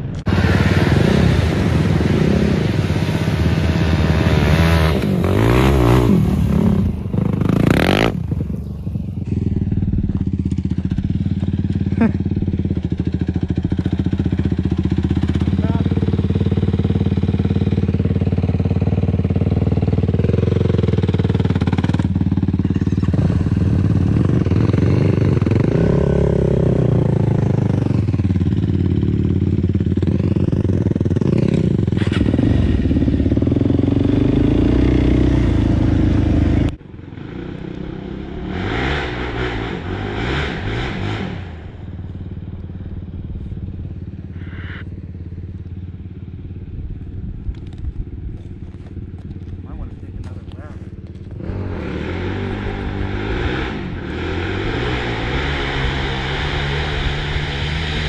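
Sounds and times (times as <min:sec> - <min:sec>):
quad engines idling: 0:05.1 - 0:25.6, 0:41.7 - 0:53.2.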